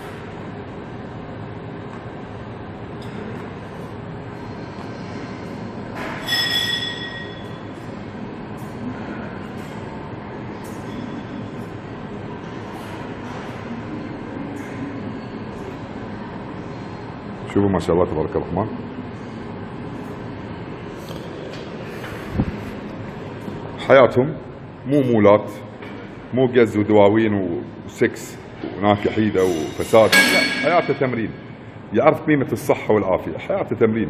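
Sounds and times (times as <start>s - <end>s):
gym background noise: 0.0s - 33.5s
high metallic ring: 6.0s - 7.8s, 29.4s - 31.6s.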